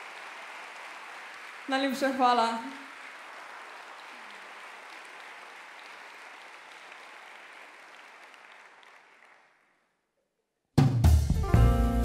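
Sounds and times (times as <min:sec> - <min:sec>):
audience applauding: 0:00.0 - 0:09.9.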